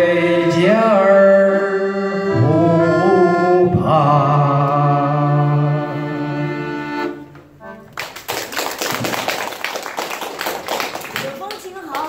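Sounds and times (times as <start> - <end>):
accordion chord: 0.0 - 8.1
audience applauding: 7.9 - 12.0.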